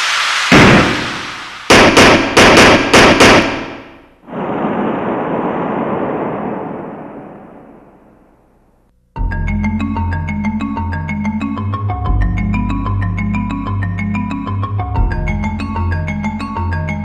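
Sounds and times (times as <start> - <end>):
long rushing hiss: 0.0 - 1.8
loud hit: 0.0 - 8.4.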